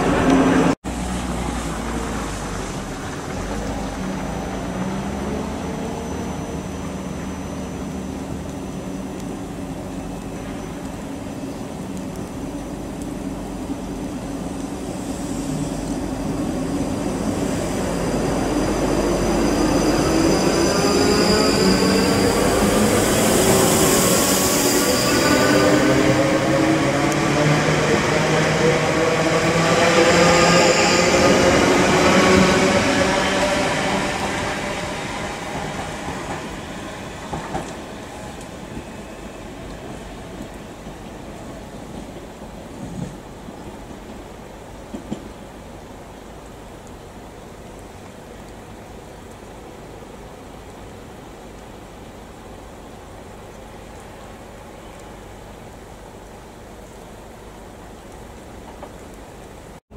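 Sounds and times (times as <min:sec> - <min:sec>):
train traction motor whine: 0:14.6 - 0:39.6
high wheel squeal: 0:17.0 - 0:26.7, 0:29.8 - 0:35.5.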